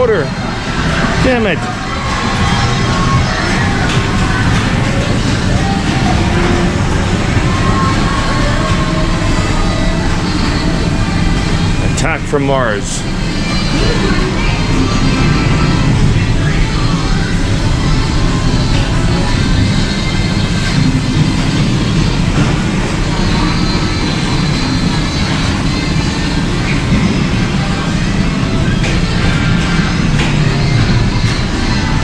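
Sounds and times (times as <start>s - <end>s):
machine voice call-outs: 0.0s - 32.0s
pinball machine music: 0.0s - 32.0s.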